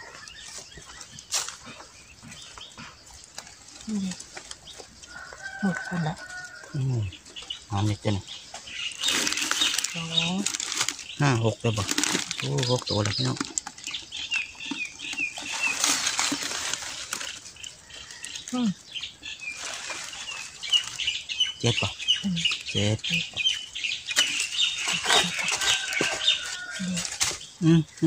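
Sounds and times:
birds chirping: 0.0s - 28.0s
hands digging through soil and leaves: 7.8s - 18.6s, 19.2s - 21.9s.

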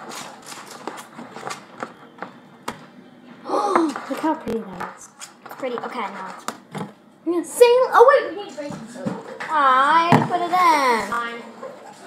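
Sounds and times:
girl gasping: 3.5s - 4.1s.

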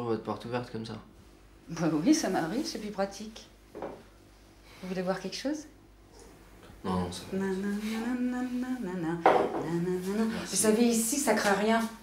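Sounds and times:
man speaking: 6.8s - 7.3s.

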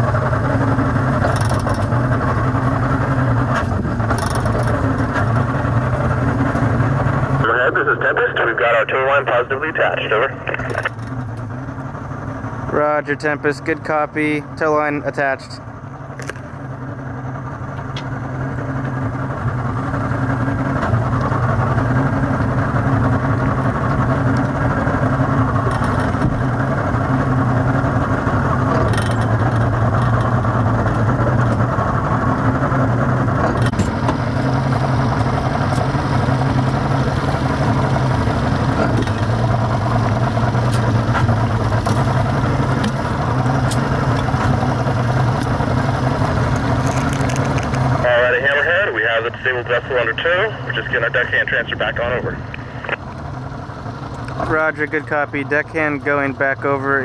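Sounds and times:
motorboat engine running: 0.0s - 57.0s.

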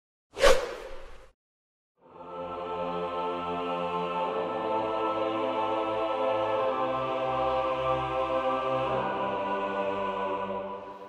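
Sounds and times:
whoosh: 0.4s - 1.3s.

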